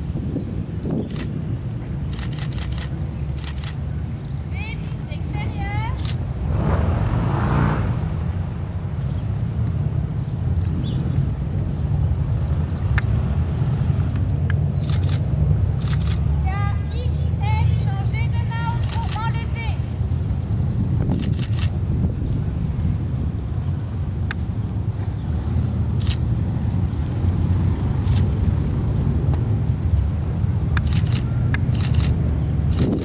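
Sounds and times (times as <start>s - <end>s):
steady low rumble: 0.0s - 33.0s.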